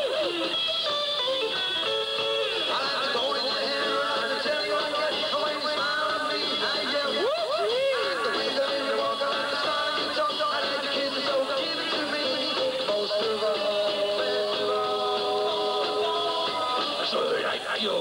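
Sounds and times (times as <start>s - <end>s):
rockabilly band playing live: 0.0s - 17.7s.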